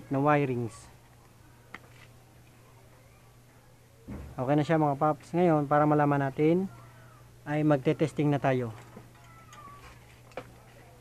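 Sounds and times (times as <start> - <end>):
faint animal call: 6.7 - 7.4, 9.2 - 10.0.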